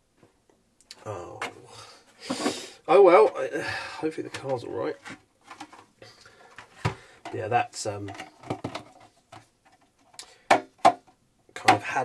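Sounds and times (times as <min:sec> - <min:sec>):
plastic case clicking and crinkling: 0:04.3 - 0:07.4, 0:08.0 - 0:11.8.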